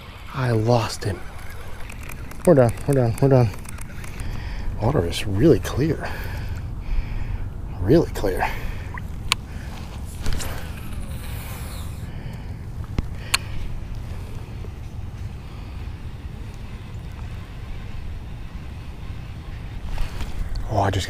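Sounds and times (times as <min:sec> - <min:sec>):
fishing reel clicks: 0:00.0 - 0:04.4.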